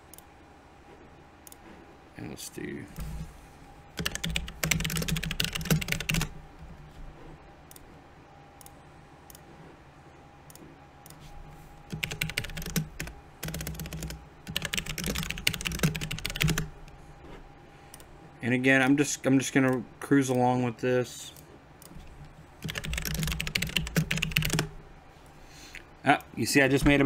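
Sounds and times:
computer keyboard typing: 0:04.0 - 0:06.4, 0:11.9 - 0:16.7, 0:21.8 - 0:24.7.

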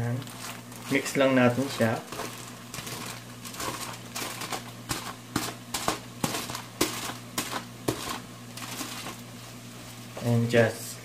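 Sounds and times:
aluminium foil crinkling: 0:00.0 - 0:09.4
wooden spatula clicking and scraping: 0:00.1 - 0:09.2.

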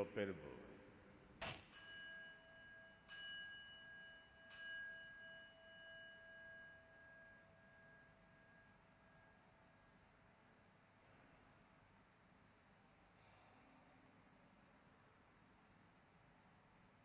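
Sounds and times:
altar bell ringing: 0:01.7 - 0:08.9.

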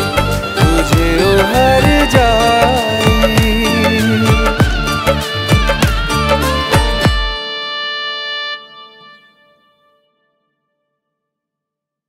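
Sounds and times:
held instrumental chord: 0:00.0 - 0:10.4.

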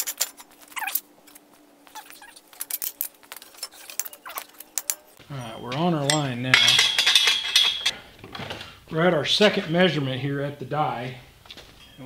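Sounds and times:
metal tubing clinking and scraping: 0:02.6 - 0:08.0
high ringing tone: 0:05.2 - 0:07.9, 0:11.8 - 0:12.0.

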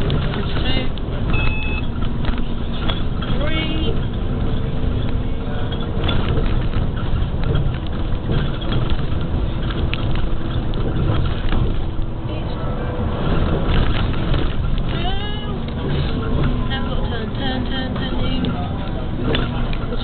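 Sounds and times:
bus engine and tyres rumbling: 0:00.0 - 0:20.0
rattles and knocks from bumpy ride: 0:00.0 - 0:20.0.

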